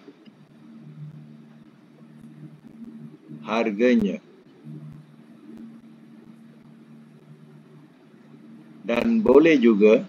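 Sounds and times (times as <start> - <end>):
low hum: 0.0 - 10.0
microphone hiss: 0.0 - 10.0.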